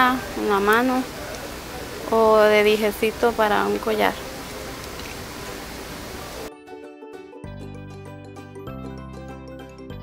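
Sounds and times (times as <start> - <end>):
room noise hiss: 0.0 - 6.5
background music: 2.1 - 10.0.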